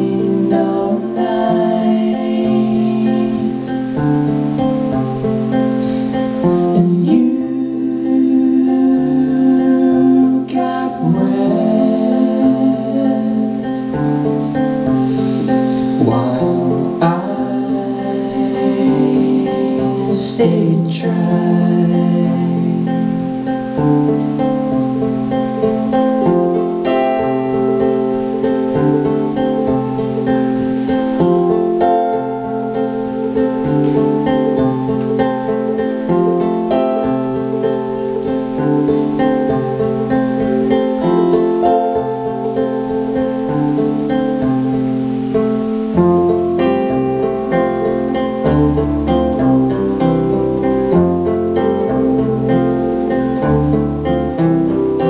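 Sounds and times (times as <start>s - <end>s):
acoustic guitars strumming: 0.0s - 55.0s
deep bass notes: 11.0s - 19.4s.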